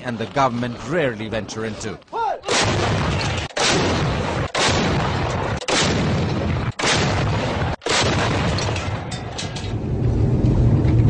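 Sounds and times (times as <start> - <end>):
artillery blasts: 2.5 - 10.8.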